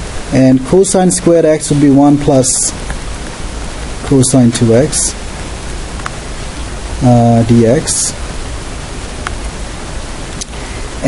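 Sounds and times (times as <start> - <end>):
recording hiss: 0.0 - 11.0
faint click: 10.4 - 10.6.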